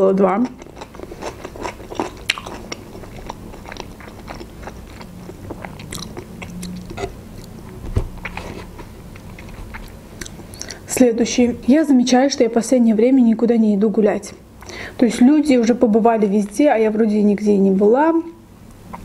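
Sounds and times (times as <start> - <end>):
chewing food with wet mouth clicks: 0.4 - 10.8.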